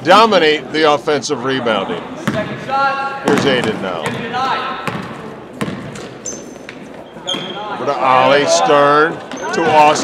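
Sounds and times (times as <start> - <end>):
basketball bouncing on wood floor: 3.3 - 6.2
sneaker squeak: 4.8 - 7.9, 9.2 - 9.8.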